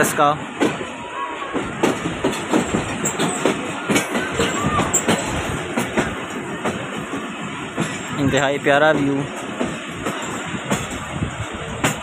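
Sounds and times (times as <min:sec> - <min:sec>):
train running noise: 0:00.0 - 0:12.0
train wheels knocking on rail joints: 0:00.0 - 0:12.0.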